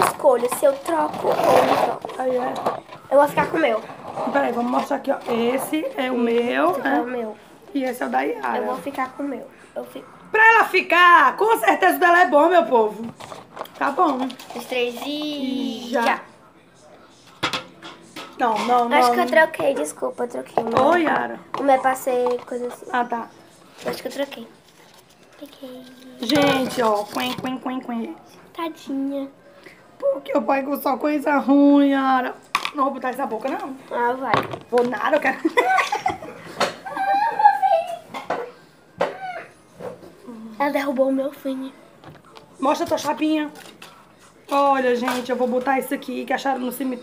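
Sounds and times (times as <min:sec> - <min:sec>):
plastic bowl knock: 0:20.5 - 0:22.5, 0:34.3 - 0:35.3.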